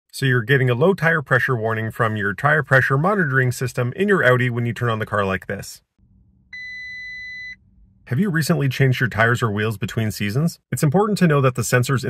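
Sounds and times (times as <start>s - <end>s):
warning beep: 6.6s - 7.6s.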